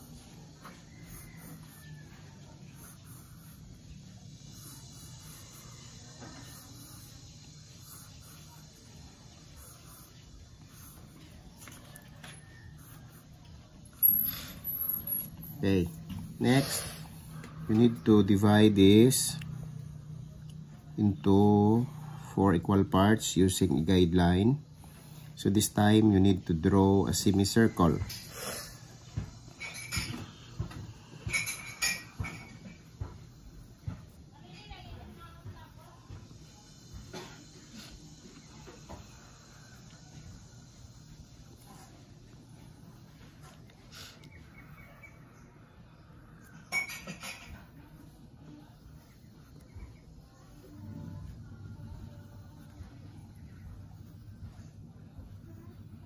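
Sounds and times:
pencil scratching on paper: 0.0s - 13.6s, 14.2s - 20.0s, 47.5s - 56.0s
steady low hum: 0.0s - 56.0s.

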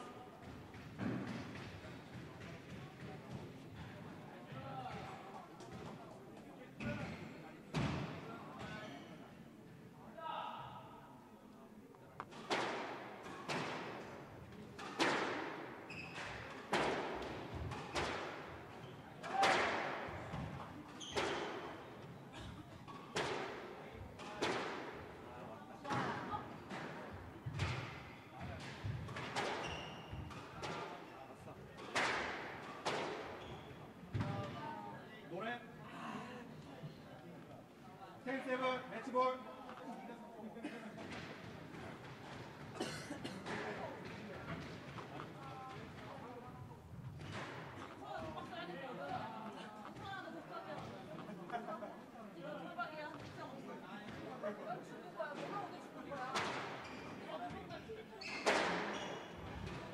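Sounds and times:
squash ball struck by rackets: 14.8s - 15.7s.

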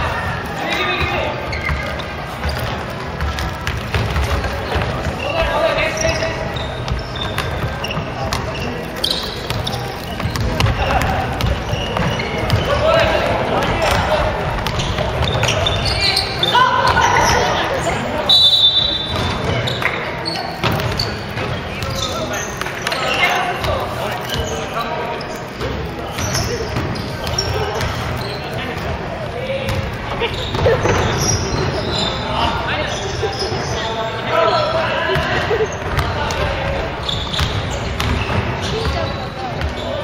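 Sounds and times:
players calling out: 0.0s - 40.0s
shoe squeak: 0.0s - 40.0s
basketball bouncing: 1.0s - 5.5s, 6.8s - 15.8s, 19.0s - 22.0s, 29.7s - 31.9s, 35.2s - 39.8s.

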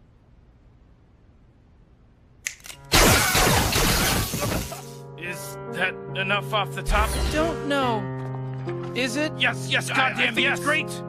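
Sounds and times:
loud laser blast: 2.9s - 4.7s.

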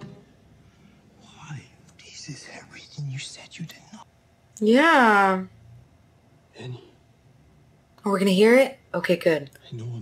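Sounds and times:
person whispering: 1.2s - 4.0s.

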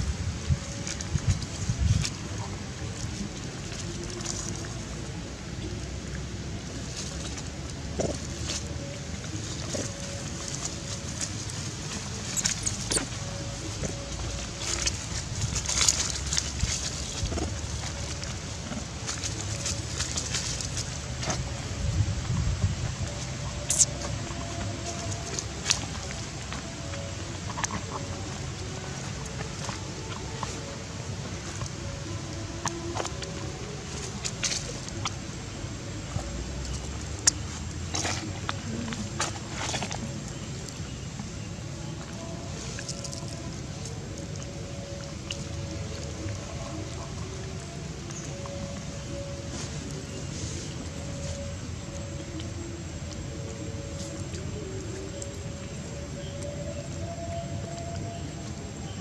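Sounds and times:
faint tonal sounds: 0.0s - 59.0s
wind rumble on microphone: 0.0s - 59.0s.

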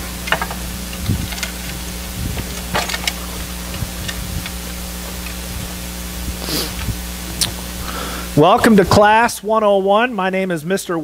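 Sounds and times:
low electrical hum: 0.0s - 11.0s
hiss: 5.2s - 8.4s.

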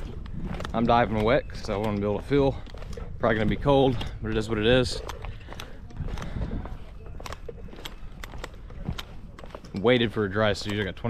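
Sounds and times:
scuba gear clinking: 0.0s - 11.0s.

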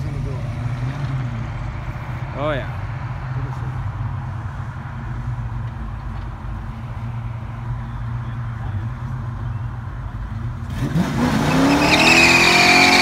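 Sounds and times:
car engine idling: 0.0s - 10.8s.

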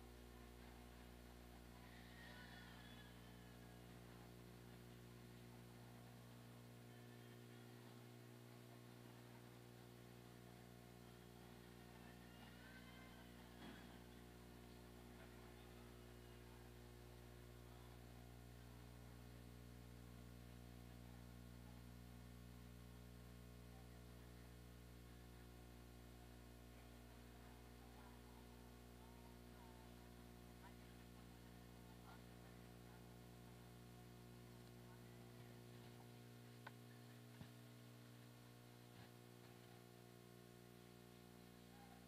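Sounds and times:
faint distant voices: 0.0s - 42.0s
low electrical hum: 0.0s - 42.0s.

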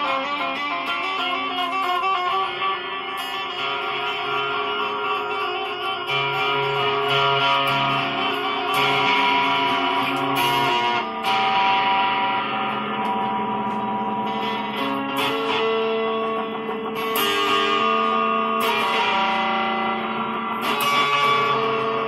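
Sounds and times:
guitar chords ringing: 0.0s - 22.0s.

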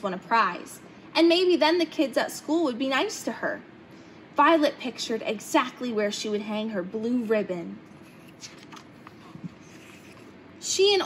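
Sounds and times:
paper page rustling: 8.0s - 10.3s.

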